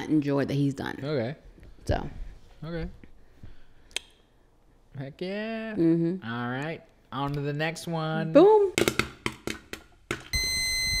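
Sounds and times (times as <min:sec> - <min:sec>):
high electronic beep tone: 0:10.4 - 0:11.0.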